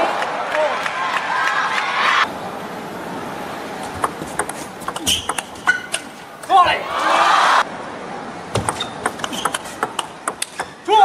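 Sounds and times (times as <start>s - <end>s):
table tennis ball clicking: 4.0s - 6.1s, 8.6s - 10.7s.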